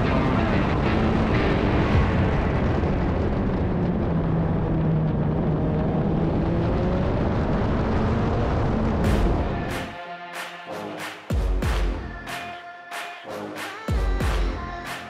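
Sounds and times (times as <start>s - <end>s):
heavy wind rush: 0.0s - 10.0s
race car engine at speed: 0.0s - 10.6s.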